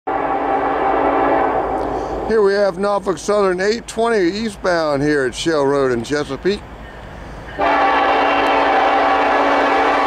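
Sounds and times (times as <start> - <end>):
locomotive air horn: 0.1 - 2.3, 7.6 - 10.0
low train rumble: 0.1 - 10.0.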